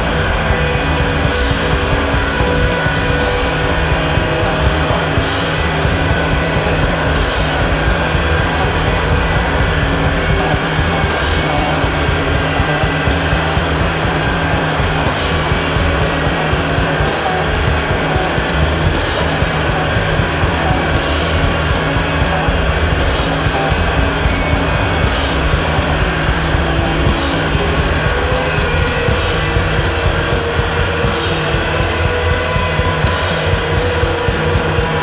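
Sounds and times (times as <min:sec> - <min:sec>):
distorted noise rock: 0:00.0 - 0:35.0
low drone: 0:00.0 - 0:35.0.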